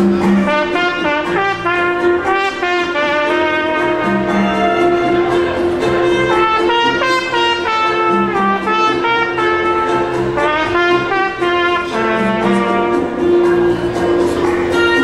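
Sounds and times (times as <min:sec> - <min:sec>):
held lower accompaniment tone: 0:00.0 - 0:15.0
trumpet playing lively melody: 0:00.0 - 0:15.0.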